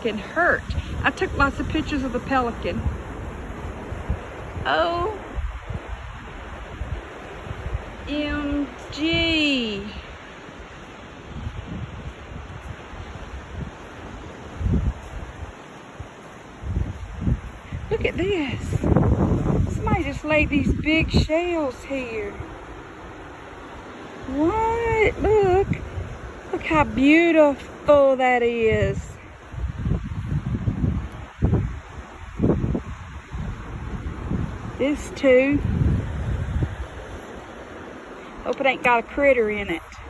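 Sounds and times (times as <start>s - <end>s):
steady outdoor hiss: 0.0s - 40.0s
wind buffeting microphone: 0.0s - 40.0s.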